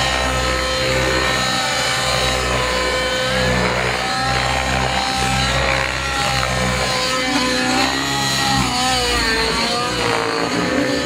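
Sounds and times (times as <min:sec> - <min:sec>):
model helicopter rotor whine: 0:00.0 - 0:11.0.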